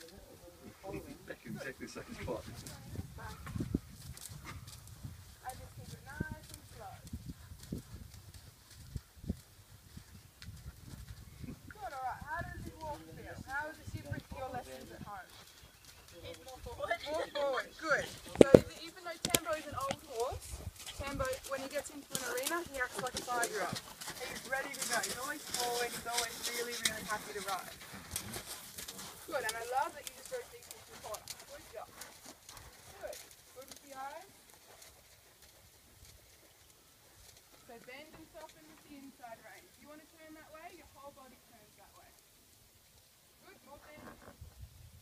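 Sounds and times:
horse hoofbeats: 0:02.0 - 0:41.3.

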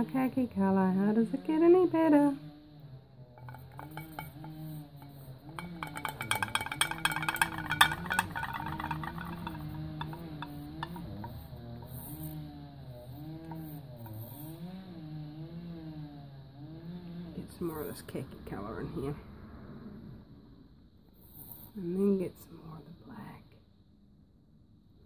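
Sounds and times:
stick scraping paint in metal cup: 0:03.4 - 0:12.4, 0:13.4 - 0:14.5.

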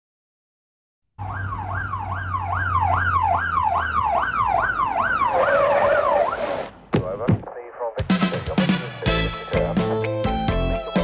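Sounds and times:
police siren sweeping: 0:01.2 - 0:06.8.

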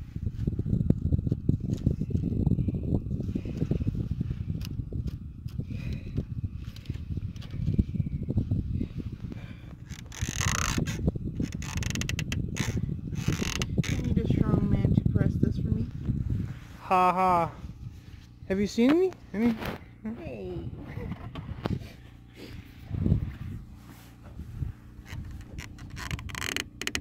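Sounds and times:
continuous low rumble: 0:00.0 - 0:27.0.

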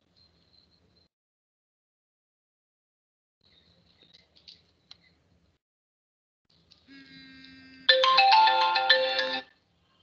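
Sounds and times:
electronic ringtone melody: 0:07.8 - 0:09.5.

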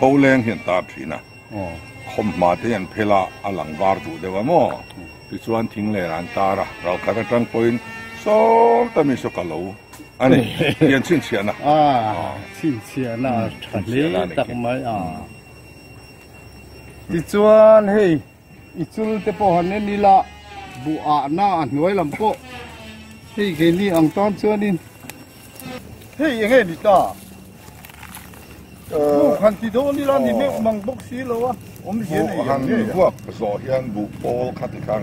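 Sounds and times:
men talking: 0:00.0 - 0:15.4, 0:16.9 - 0:35.0
man speaking: 0:26.2 - 0:27.2, 0:28.9 - 0:35.0.

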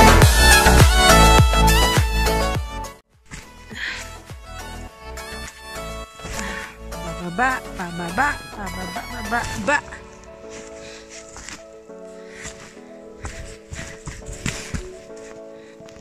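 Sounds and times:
short rustling noises: 0:09.4 - 0:16.0.

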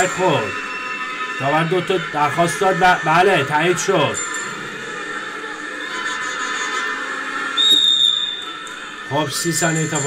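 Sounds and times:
arena crowd din: 0:00.0 - 0:10.0
referee's whistle blast: 0:07.6 - 0:08.6.

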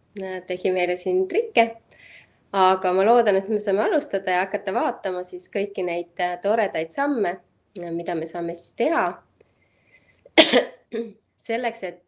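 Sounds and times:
woman speaking: 0:00.2 - 0:01.9, 0:02.5 - 0:09.2, 0:11.0 - 0:12.0
sudden loud cough: 0:10.4 - 0:10.8.

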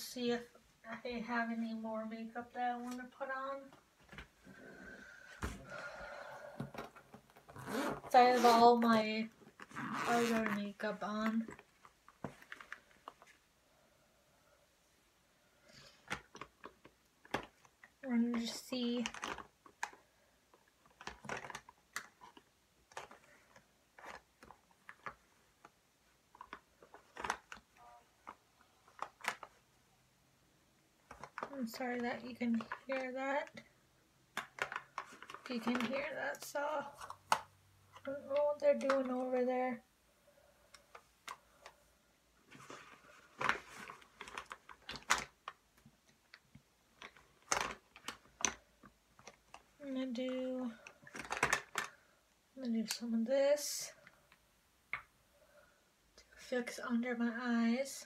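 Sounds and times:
faint irregular clicks and knocks: 0:15.7 - 0:29.7, 0:31.0 - 0:39.6, 0:42.5 - 0:53.1
makeup cases clicking and tapping: 0:31.0 - 0:33.7, 0:34.3 - 0:39.4, 0:43.4 - 0:49.8, 0:50.8 - 0:52.0, 0:54.0 - 0:55.2.

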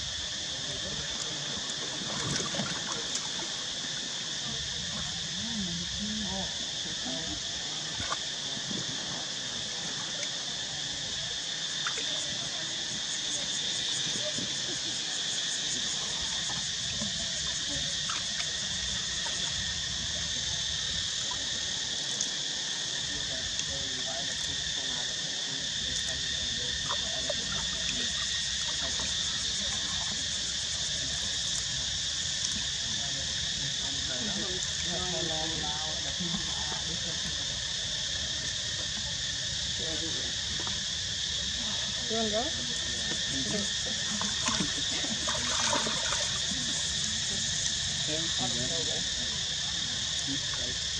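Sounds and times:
insects droning: 0:00.0 - 0:50.9
faint distant voices: 0:00.3 - 0:50.9.

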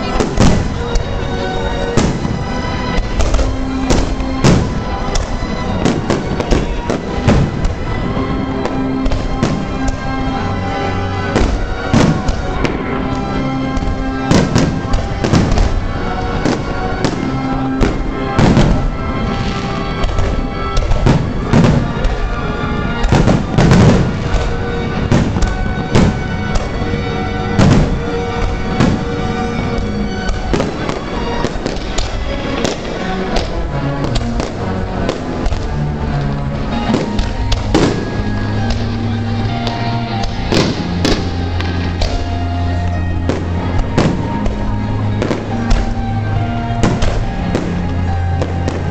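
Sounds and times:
loud music: 0:00.0 - 0:48.9.

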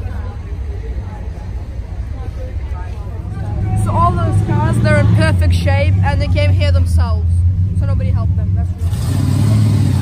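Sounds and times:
people talking: 0:00.0 - 0:09.0
low rumble: 0:02.7 - 0:09.0.

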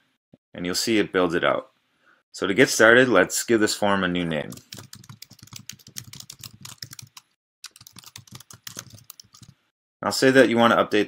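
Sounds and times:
computer keyboard typing: 0:04.5 - 0:09.6.

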